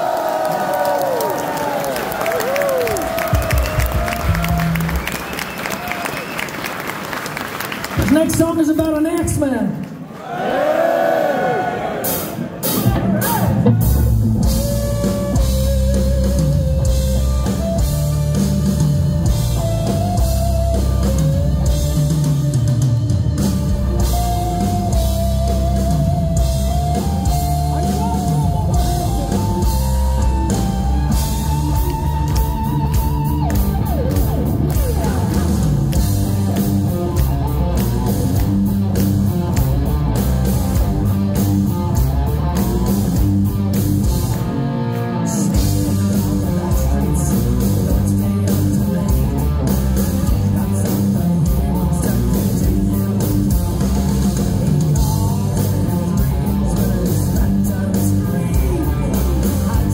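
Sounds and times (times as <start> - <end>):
bass: 0.0 - 6.4, 12.6 - 59.9
drums: 0.0 - 10.0, 11.7 - 59.9
electric guitar lead melody: 13.7 - 59.9.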